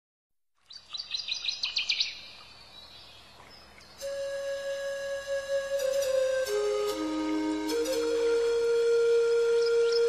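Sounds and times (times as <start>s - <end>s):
faint outdoor ambience: 0.6s - 10.0s
songbird chirping: 0.6s - 10.0s.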